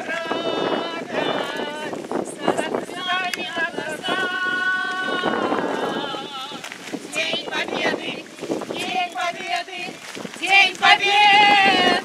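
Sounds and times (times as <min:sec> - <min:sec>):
crowd walking: 0:00.0 - 0:12.0
group singing: 0:00.0 - 0:12.0.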